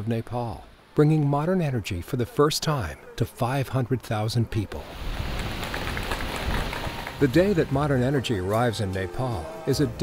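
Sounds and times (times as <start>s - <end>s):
water turbine rushing noise: 4.8s - 8.4s.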